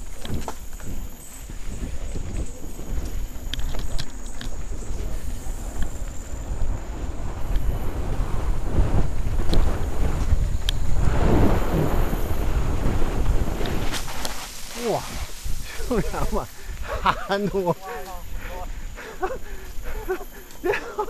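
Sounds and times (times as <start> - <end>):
bike rattles and clicks: 0.0 - 7.8
wind buffeting microphone: 0.0 - 21.0
tyres rumbling on dirt: 4.5 - 21.0.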